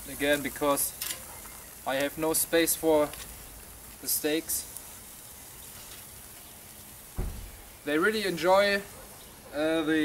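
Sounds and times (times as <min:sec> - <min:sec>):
food sizzling on a grill: 0:00.0 - 0:10.0
low thump: 0:07.2 - 0:07.7.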